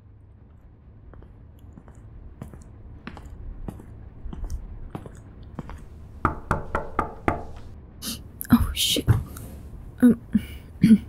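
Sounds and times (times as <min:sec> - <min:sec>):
knocks on a door: 0:06.2 - 0:07.6.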